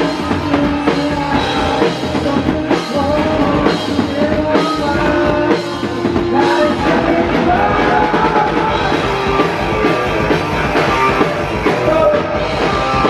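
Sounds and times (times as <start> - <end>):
drum kit: 0.0 - 13.0
electric guitars: 0.0 - 13.0.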